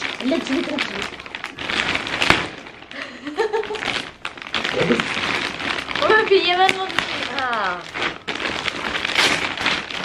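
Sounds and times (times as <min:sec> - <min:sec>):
plastic bags rustling: 0:00.0 - 0:10.0.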